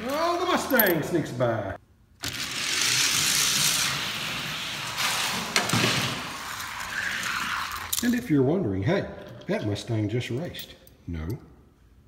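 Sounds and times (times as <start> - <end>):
toy cars rolling on plastic track: 2.2 - 8.0.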